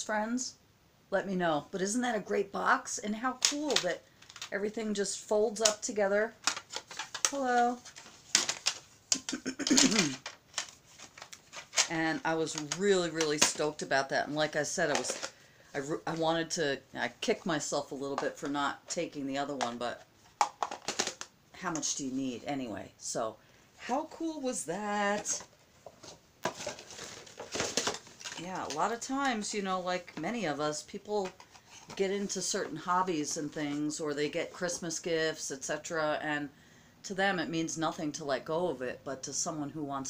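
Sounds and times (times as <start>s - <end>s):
boxes rustling and scraping: 6.4s - 13.8s, 14.4s - 16.4s, 23.8s - 30.6s, 31.2s - 33.3s
person clearing throat: 9.2s - 10.2s.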